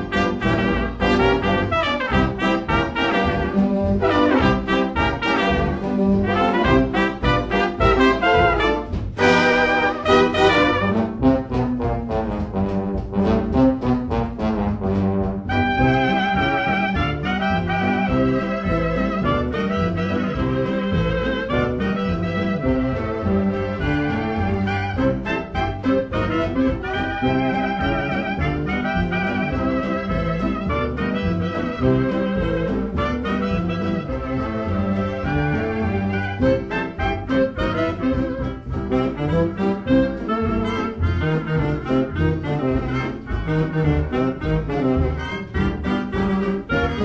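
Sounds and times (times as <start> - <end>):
jazz band playing swing: 0.0 - 47.0.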